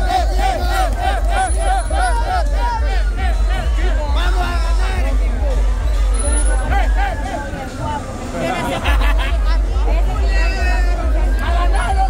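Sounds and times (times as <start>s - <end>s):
crowd talking and calling out: 0.0s - 12.0s
music: 0.0s - 12.0s.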